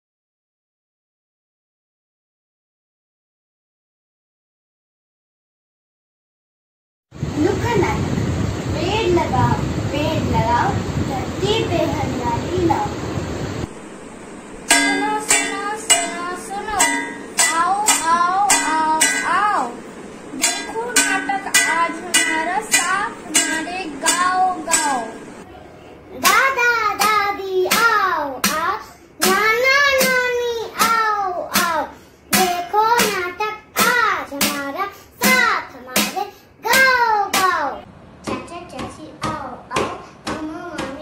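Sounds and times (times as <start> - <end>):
metal spoon striking brass plate: 14.7 - 19.5, 20.4 - 25.2
slap on steel plate: 14.7 - 19.5, 20.4 - 25.2, 26.2 - 37.6
girl chanting: 14.7 - 25.3, 26.1 - 41.0.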